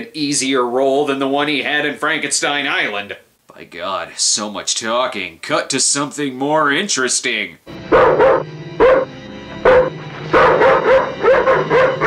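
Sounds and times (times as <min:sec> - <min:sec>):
low musical drone: 0:07.8 - 0:12.0
dog barking: 0:07.9 - 0:12.0.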